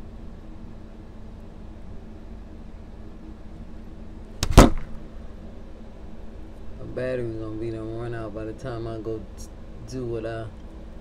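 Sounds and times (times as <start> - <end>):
low room hum: 0.0 - 11.0
phone handling noise: 4.4 - 5.0.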